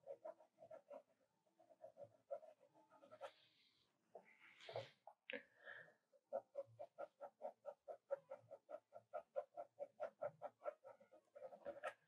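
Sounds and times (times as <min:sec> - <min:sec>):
pencil strokes on paper: 0:00.0 - 0:05.2, 0:06.0 - 0:12.0.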